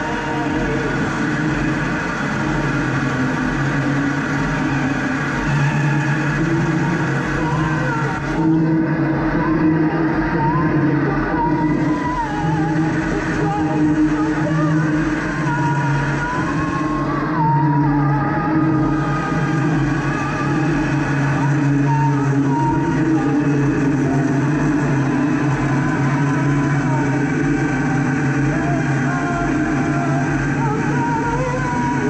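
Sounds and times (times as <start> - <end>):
electronic noise music drone: 0.0 - 32.0.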